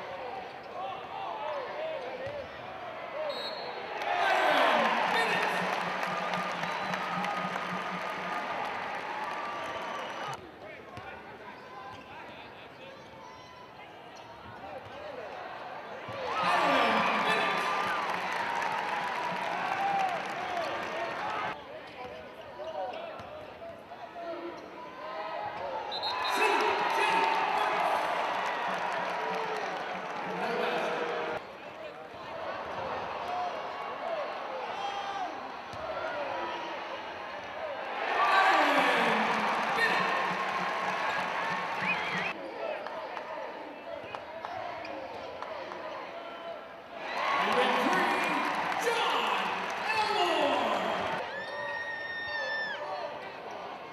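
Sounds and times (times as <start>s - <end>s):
crowd voices: 0.0s - 12.0s, 13.0s - 21.7s, 24.6s - 51.3s
crowd cheering loudly: 1.0s - 10.4s, 15.1s - 21.6s, 24.9s - 31.4s, 32.2s - 53.9s.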